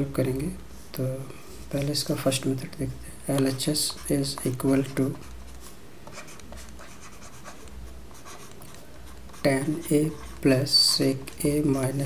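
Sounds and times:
low steady hum: 0:00.0 - 0:12.0
stylus scratching on tablet: 0:03.3 - 0:12.0.

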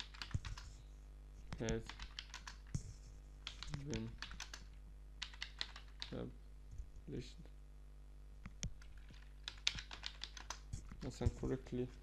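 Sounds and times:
keyboard keys clicking: 0:00.0 - 0:00.7, 0:01.6 - 0:02.7, 0:03.4 - 0:06.2, 0:08.6 - 0:11.2
steady low hum: 0:00.0 - 0:12.0.

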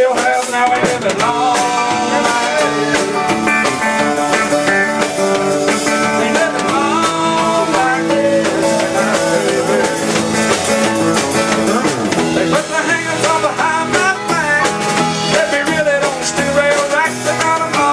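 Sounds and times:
drum kit: 0:00.0 - 0:17.9
electric guitar: 0:00.0 - 0:17.9
man singing: 0:00.0 - 0:17.9.

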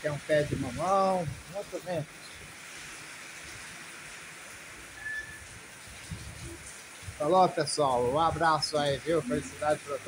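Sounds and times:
rain on concrete terrace: 0:00.0 - 0:10.0.

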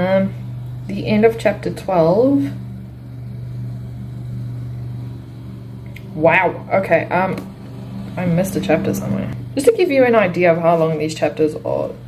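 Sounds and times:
lawnmower engine running: 0:00.0 - 0:12.0.

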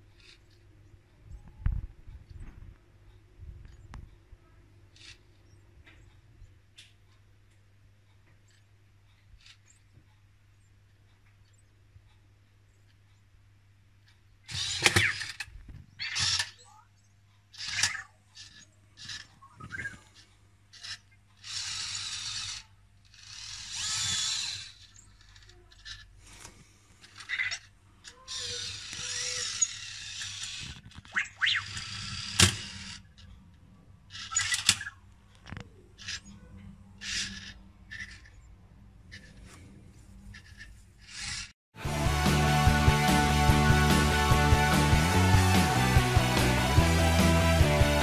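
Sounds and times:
small motors whirring: 0:14.5 - 0:16.8, 0:17.5 - 0:26.4, 0:27.0 - 0:33.3, 0:37.0 - 0:38.3, 0:40.3 - 0:41.5.

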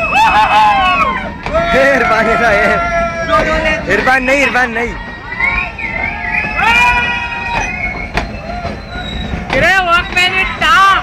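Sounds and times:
train rolling past: 0:00.0 - 0:11.0
train wheels squealing: 0:03.4 - 0:11.0.

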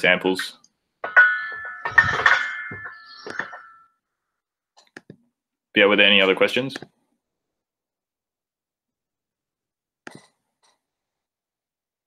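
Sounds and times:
ringing metallic clanks: 0:00.3 - 0:04.0.

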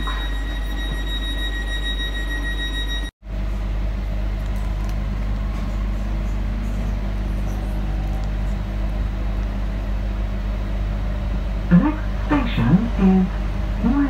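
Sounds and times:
train carriage rumble and hum: 0:00.0 - 0:14.0.

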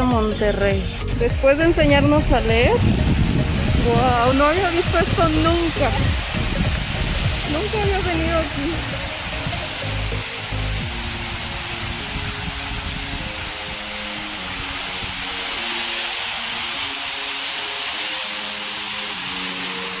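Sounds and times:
music playing: 0:00.0 - 0:20.0.

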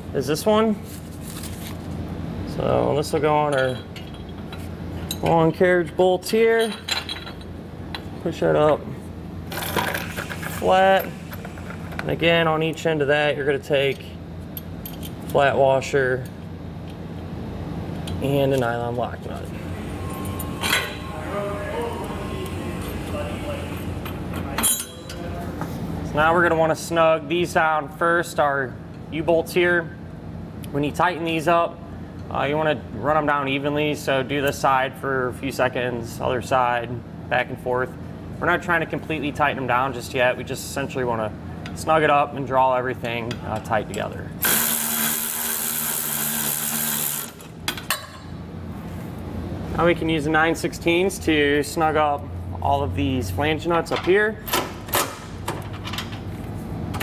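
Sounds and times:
steady low hum: 0:00.0 - 0:57.0
metal washers and nuts clinking: 0:03.4 - 0:05.4, 0:06.3 - 0:07.5, 0:23.8 - 0:25.3
electric ratchet running: 0:44.4 - 0:47.5.

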